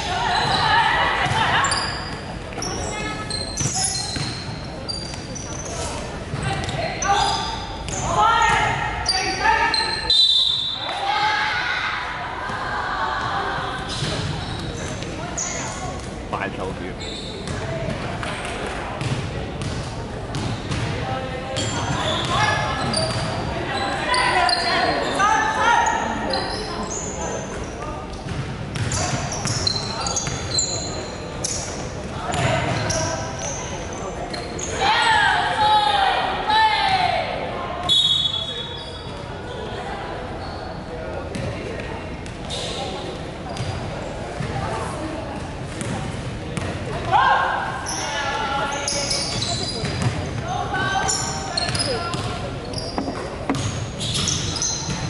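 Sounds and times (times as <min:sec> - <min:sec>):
basketball bouncing on hardwood: 0:53.0 - 0:53.8.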